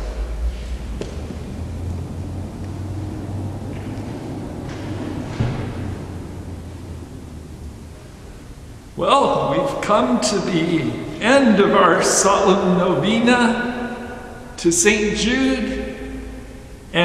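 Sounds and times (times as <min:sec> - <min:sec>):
low room rumble: 0:00.0 - 0:17.0.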